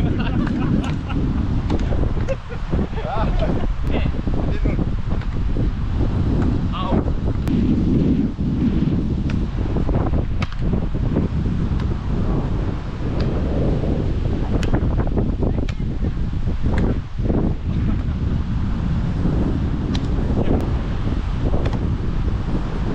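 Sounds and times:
wind buffeting microphone: 0:00.0 - 0:22.9
hands slapping volleyball: 0:00.4 - 0:01.0, 0:01.6 - 0:02.3, 0:05.1 - 0:05.5, 0:06.3 - 0:06.6, 0:09.2 - 0:09.5, 0:10.3 - 0:10.8, 0:11.7 - 0:12.0, 0:13.1 - 0:13.4, 0:14.5 - 0:14.9, 0:15.6 - 0:16.0, 0:16.7 - 0:17.0, 0:19.9 - 0:20.2, 0:21.6 - 0:21.9.

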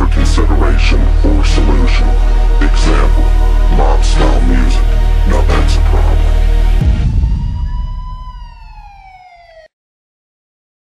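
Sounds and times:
low rumble: 0:00.0 - 0:09.4
siren wail: 0:00.6 - 0:09.8.

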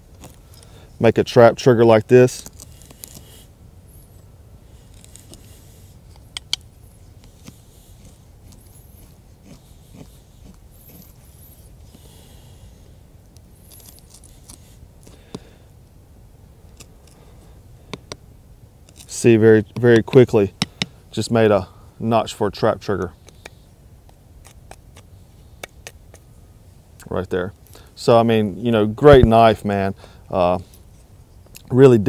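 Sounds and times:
knife scraping wood: 0:02.3 - 0:12.9, 0:13.5 - 0:15.5, 0:18.8 - 0:21.0, 0:24.4 - 0:26.2.

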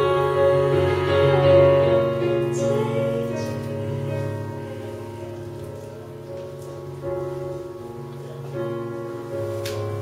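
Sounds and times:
electric keyboard sustained chords: 0:00.0 - 0:10.0.

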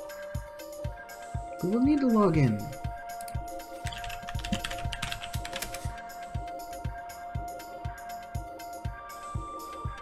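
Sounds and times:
background music with beat: 0:00.0 - 0:10.0
computer keyboard typing: 0:03.2 - 0:06.0.

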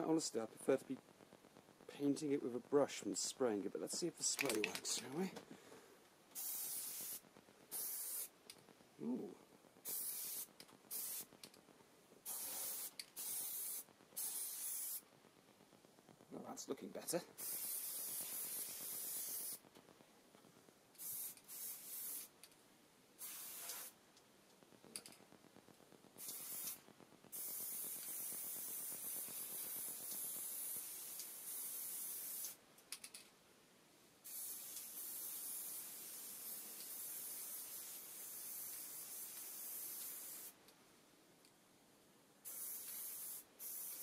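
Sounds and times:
aerosol can spraying: 0:06.4 - 0:08.3, 0:09.8 - 0:11.3, 0:12.2 - 0:15.0, 0:17.4 - 0:19.6, 0:21.0 - 0:22.3, 0:23.2 - 0:24.0, 0:26.2 - 0:32.6, 0:34.2 - 0:40.6, 0:42.4 - 0:44.0.

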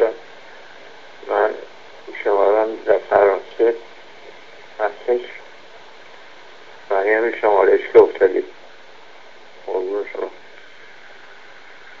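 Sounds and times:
tinny man's voice on voicemail: 0:00.0 - 0:00.3, 0:01.2 - 0:03.9, 0:04.8 - 0:05.4, 0:06.9 - 0:08.6, 0:09.6 - 0:10.4
telephone line hiss: 0:00.0 - 0:12.0.

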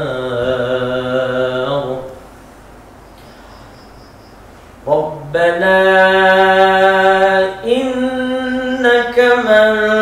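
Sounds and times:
man chanting melodically: 0:00.0 - 0:02.2, 0:04.8 - 0:10.0.

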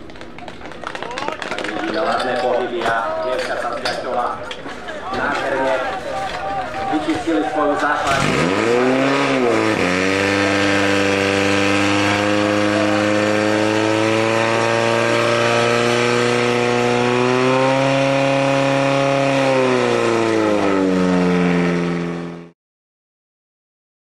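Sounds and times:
pump engine running at high revs: 0:06.9 - 0:22.5.

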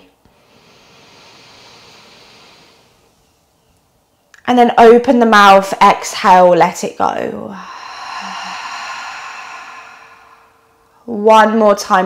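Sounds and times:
woman exhaling a sigh: 0:07.4 - 0:11.2.

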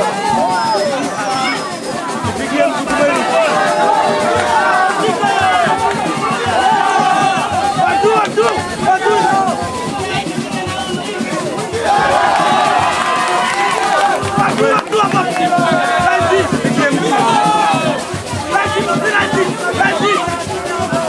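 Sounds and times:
spectators shouting: 0:00.0 - 0:21.0.

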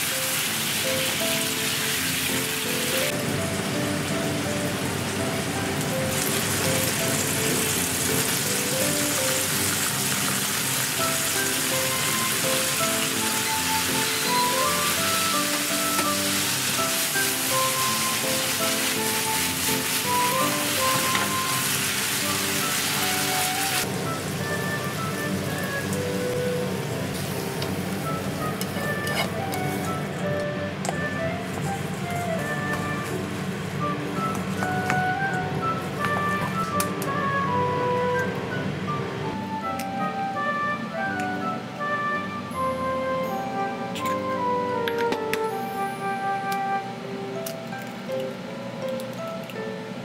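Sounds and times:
food sizzling in a frying pan: 0:00.0 - 0:05.0, 0:05.7 - 0:23.9
background music with short notes: 0:00.0 - 0:50.0.

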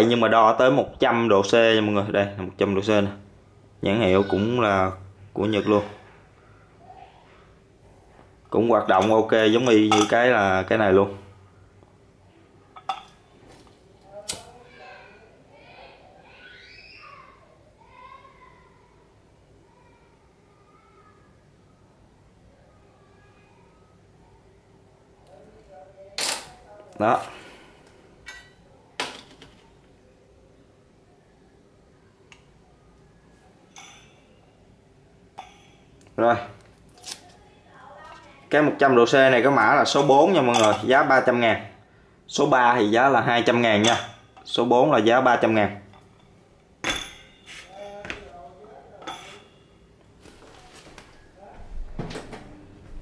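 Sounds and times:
paper rustling: 0:50.2 - 0:51.3.

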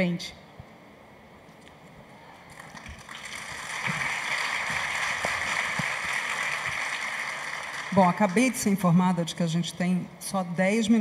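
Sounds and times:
audience applauding: 0:02.5 - 0:08.7.

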